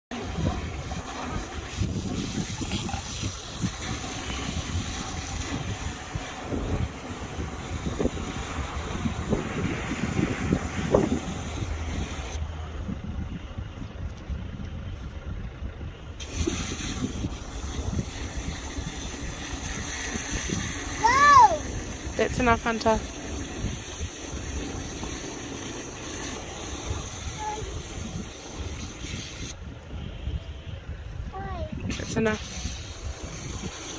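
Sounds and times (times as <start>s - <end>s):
steady low rumble: 0.1s - 33.9s
wind buffeting microphone: 0.1s - 33.9s.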